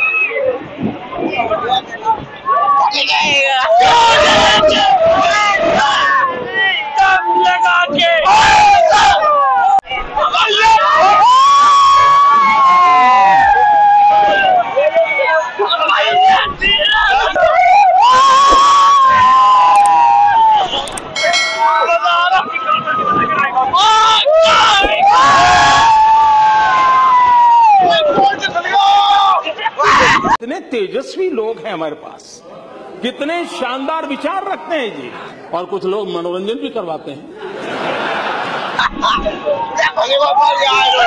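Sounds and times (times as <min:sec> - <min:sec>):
young men shouting and whooping: 0:02.5 - 0:30.4, 0:38.8 - 0:41.0
loud long shared yell: 0:03.4 - 0:15.4, 0:16.0 - 0:23.0, 0:23.7 - 0:30.4.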